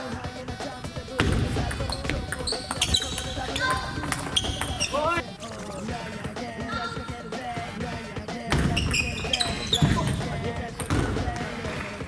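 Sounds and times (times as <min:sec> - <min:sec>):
shoes squeaking on floor: 0:01.3 - 0:05.3, 0:08.5 - 0:11.1.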